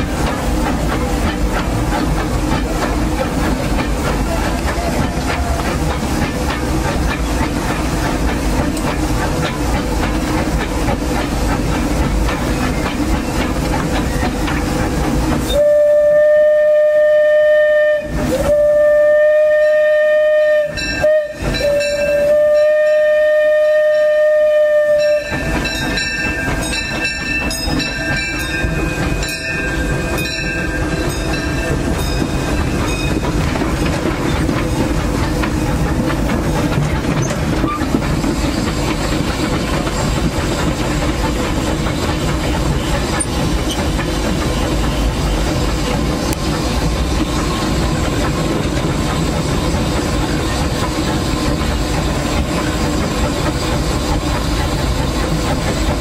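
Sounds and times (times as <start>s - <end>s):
steam locomotive rumble and rattle: 0.0s - 56.0s
steam whistle blasts: 15.5s - 25.4s.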